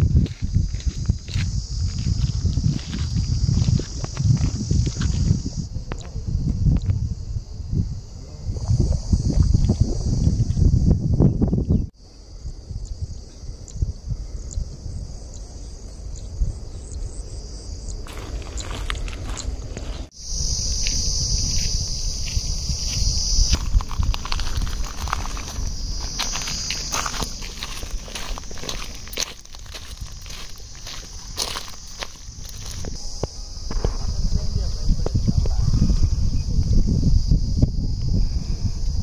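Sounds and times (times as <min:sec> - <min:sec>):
footsteps crunching on gravel: 0:00.0 - 0:05.5, 0:18.0 - 0:34.2
high-pitched insect drone: 0:00.0 - 0:39.0
wind rumbling on microphone: 0:00.0 - 0:39.0.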